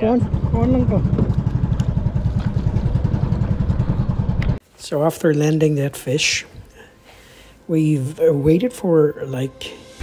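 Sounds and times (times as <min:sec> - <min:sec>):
small boat engine throbbing: 0:00.0 - 0:04.6.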